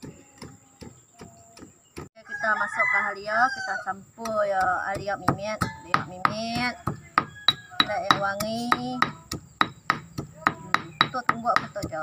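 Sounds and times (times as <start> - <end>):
pestle pounding in stone mortar: 4.2 - 12.0.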